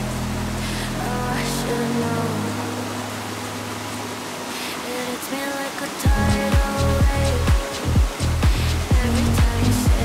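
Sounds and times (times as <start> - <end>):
low synth chords: 0.0 - 4.6, 6.1 - 10.0
steady hiss: 0.0 - 10.0
pop song vocal note: 0.6 - 3.2, 4.6 - 10.0.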